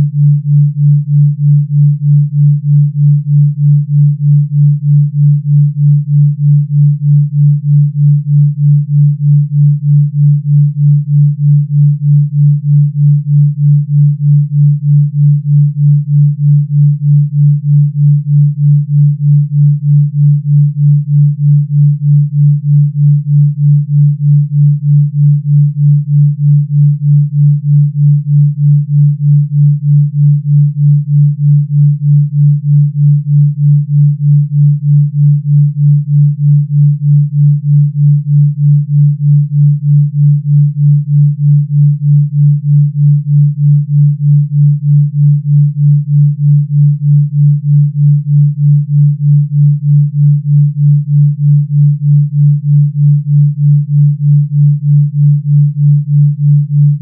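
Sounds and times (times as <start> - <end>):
pulsing low sine tone: 0.0 - 57.0.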